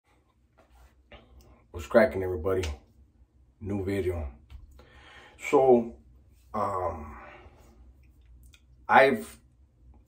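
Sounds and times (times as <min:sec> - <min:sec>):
man speaking: 0:01.7 - 0:02.8, 0:03.6 - 0:04.4, 0:05.4 - 0:07.4
soft breath sounds: 0:04.7 - 0:05.4.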